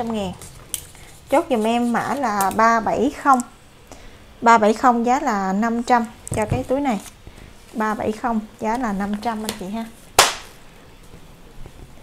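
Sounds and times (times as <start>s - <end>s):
sharp smack: 10.2s - 10.6s.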